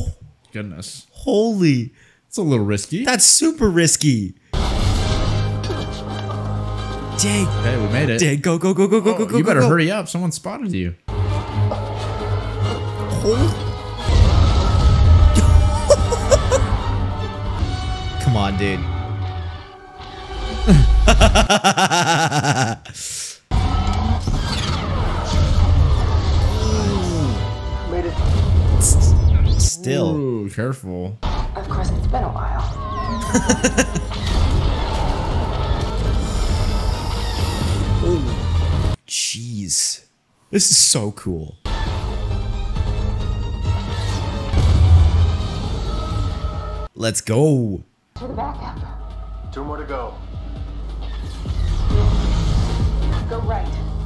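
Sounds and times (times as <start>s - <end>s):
tv soundtrack music: 4.6s - 10.0s, 11.1s - 30.4s, 32.3s - 39.0s, 41.7s - 47.0s, 48.2s - 54.0s
men laughing: 15.4s - 16.8s, 20.7s - 23.0s, 33.2s - 34.2s.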